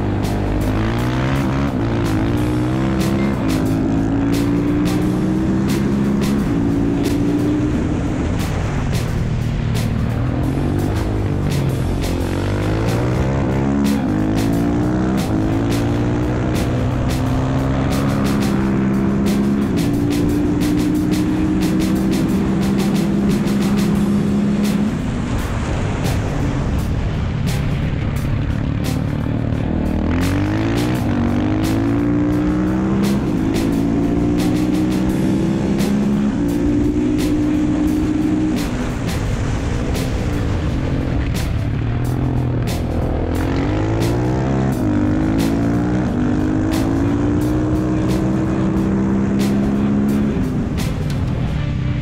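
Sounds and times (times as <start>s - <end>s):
motorcycle engine revving: 0.0s - 52.0s.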